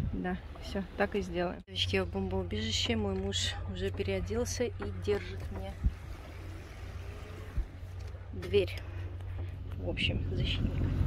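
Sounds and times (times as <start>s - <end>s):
wind rumble on microphone: 0.0s - 0.9s, 4.7s - 11.0s.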